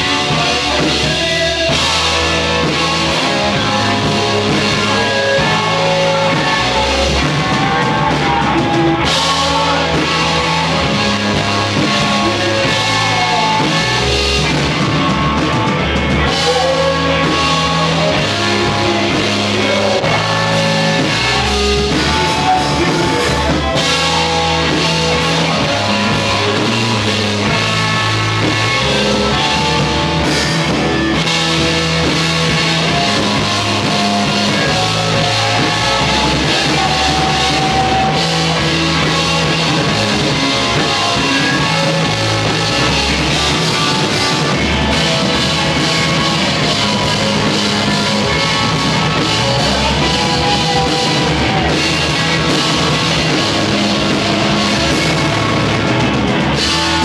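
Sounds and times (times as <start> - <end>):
bass guitar: 0.0 - 57.0
drum kit: 0.0 - 57.0
electric guitar: 0.0 - 57.0.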